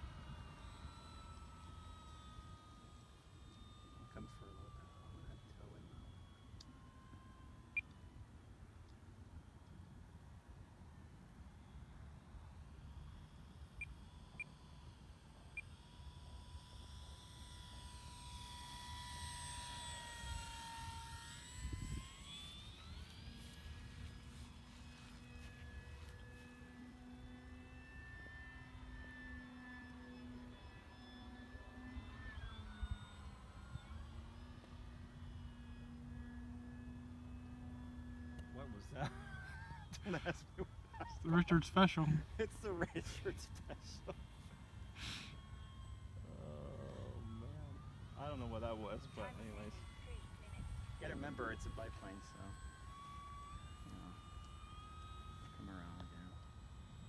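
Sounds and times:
model plane motor whining: 0:00.0 - 0:57.0.

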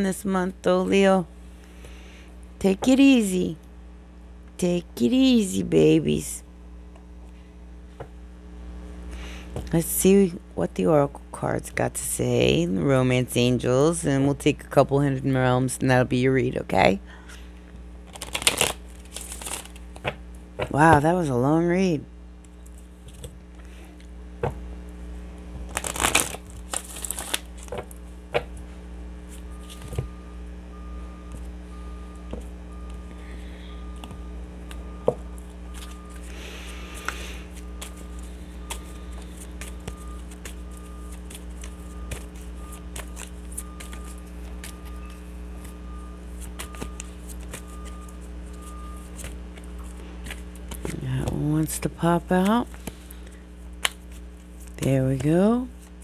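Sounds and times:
cards being shuffled: 0:18.1 - 0:20.1, 0:25.6 - 0:28.5, 0:29.3 - 0:30.1, 0:35.7 - 0:51.4, 0:52.2 - 0:56.0.

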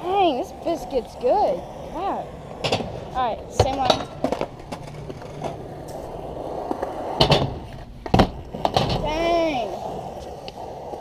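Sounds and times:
light skateboard clacks: 0:00.0 - 0:11.0
skateboard wheels rolling on concrete: 0:00.0 - 0:11.0
skateboard cracks: 0:01.6 - 0:11.0.

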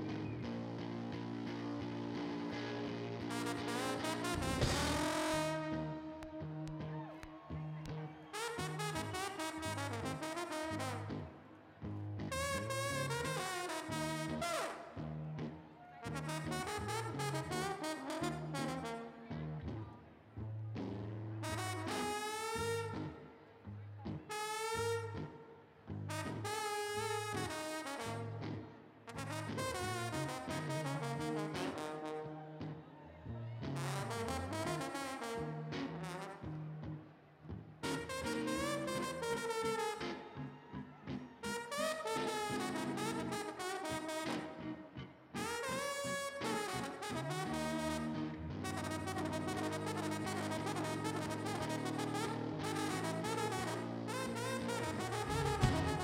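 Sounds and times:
trombone playing blues solo: 0:00.0 - 0:07.2, 0:07.9 - 0:11.4, 0:12.0 - 0:20.0, 0:21.0 - 0:23.2, 0:24.1 - 0:32.8, 0:33.7 - 0:37.1, 0:37.7 - 0:40.5, 0:41.4 - 0:56.0
low bass accompaniment: 0:02.9 - 0:06.8, 0:54.4 - 0:56.0.

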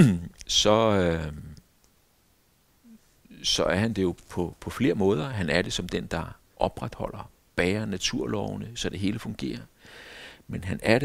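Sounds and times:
man speaking: 0:00.0 - 0:01.6, 0:03.3 - 0:09.7, 0:10.5 - 0:11.0.

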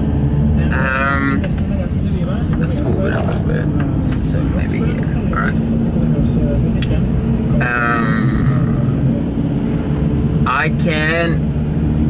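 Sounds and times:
car engine idling: 0:00.0 - 0:12.0
man making wordless sounds: 0:07.6 - 0:09.1.

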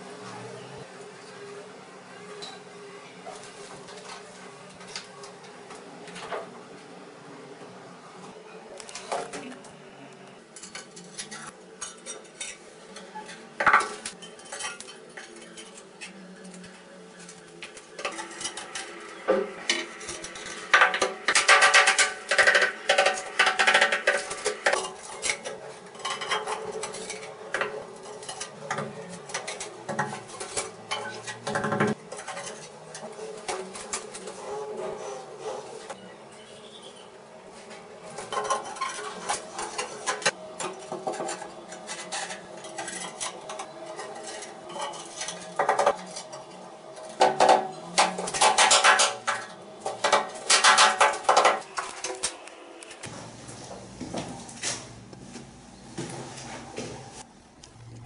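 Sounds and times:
tiles and tools clinking: 0:10.6 - 0:34.3, 0:38.1 - 0:52.4
ceramic tile clattering and scraping: 0:47.2 - 0:51.7.

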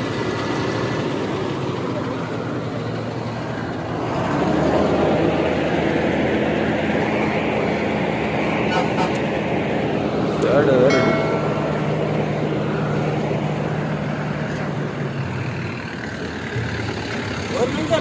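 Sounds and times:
lorry diesel engine droning: 0:00.0 - 0:18.0.

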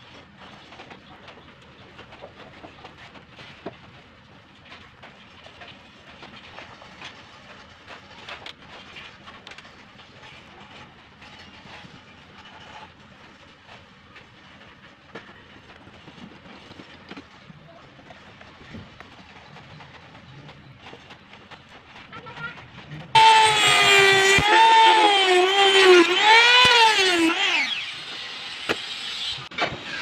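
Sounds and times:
brush tapping and scraping: 0:00.0 - 0:27.1.

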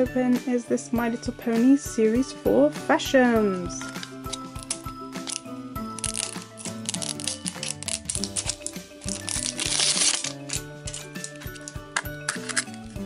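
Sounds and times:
background music: 0:00.0 - 0:13.0
plastic shrink-wrap crinkling: 0:03.8 - 0:13.0.

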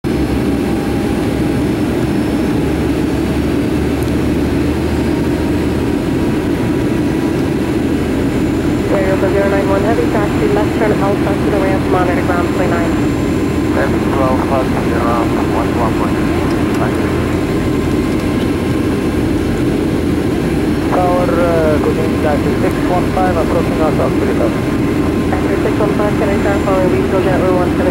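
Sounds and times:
jet engine cabin noise: 0:00.0 - 0:27.9
person talking: 0:08.8 - 0:17.6, 0:20.9 - 0:27.9.

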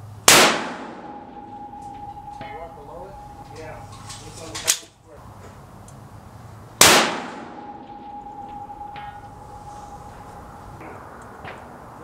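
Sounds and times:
rifle shot with echo: 0:00.3 - 0:01.8, 0:06.8 - 0:08.2
thin ringing tone: 0:00.8 - 0:04.7, 0:07.4 - 0:11.1.

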